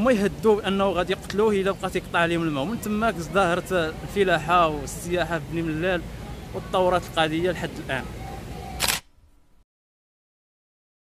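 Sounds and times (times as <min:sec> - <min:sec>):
faint outdoor background noise: 0:00.0 - 0:09.6
camera shutter click: 0:08.8 - 0:09.1.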